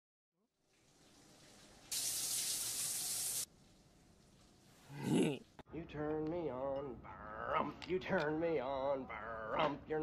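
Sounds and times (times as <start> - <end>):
shower spray hissing: 0.7 - 5.0.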